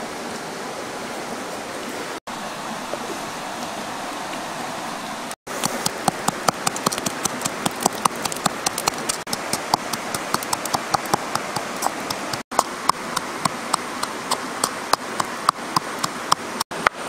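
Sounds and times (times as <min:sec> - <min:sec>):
flowing river water: 0:00.0 - 0:17.0
pestle pounding in a bowl: 0:05.6 - 0:16.4.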